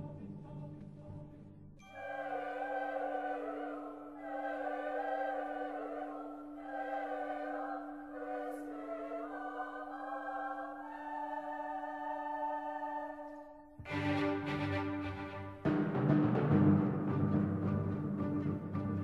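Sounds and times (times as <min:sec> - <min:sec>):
choir singing held chords: 0:01.8 - 0:19.0.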